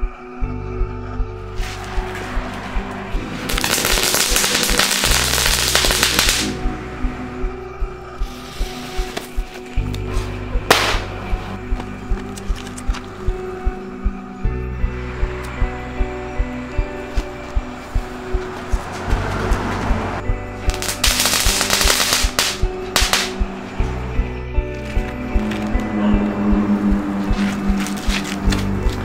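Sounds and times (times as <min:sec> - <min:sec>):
music with steady beat: 0:00.0 - 0:29.0
firecrackers popping: 0:03.5 - 0:06.6, 0:10.7 - 0:11.1, 0:20.7 - 0:23.4
sharp bang: 0:10.7 - 0:11.2.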